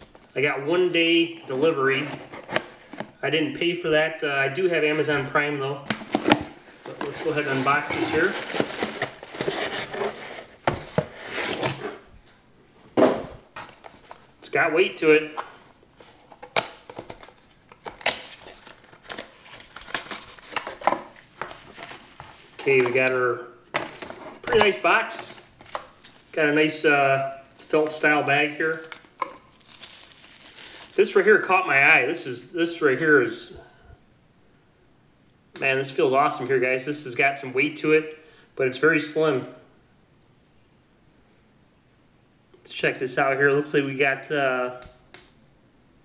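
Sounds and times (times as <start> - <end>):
cardboard and plastic packaging rustling: 1.4 - 3.2, 5.9 - 12.1, 13.5 - 14.4, 15.2 - 31.3
bubble wrap crinkling: 6.1 - 11.6, 17.0 - 22.8, 25.3 - 26.5, 27.4 - 31.2.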